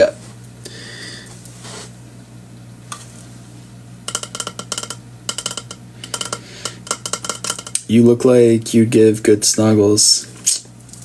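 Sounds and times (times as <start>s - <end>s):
steady low hum: 0.0s - 11.0s
metal water bottle clinking: 4.1s - 7.8s.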